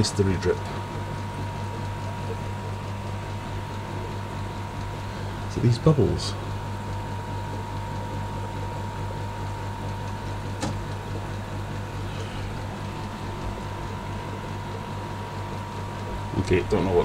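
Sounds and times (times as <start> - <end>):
aquarium air pumps humming: 0.0 - 17.0.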